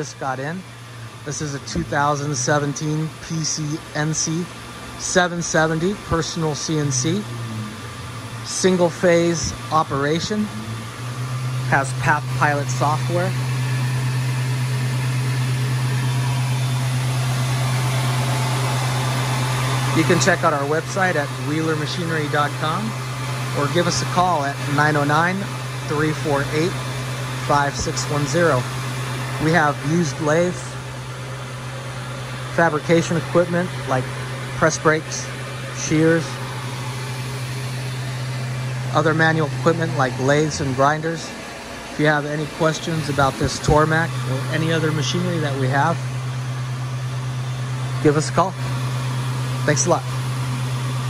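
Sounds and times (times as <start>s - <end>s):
cnc mill humming: 0.0s - 51.0s.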